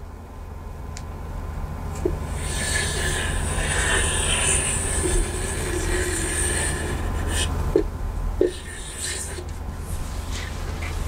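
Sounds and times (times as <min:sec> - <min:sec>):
chalk scraping on chalkboard: 0:02.2 - 0:07.6, 0:08.4 - 0:11.0.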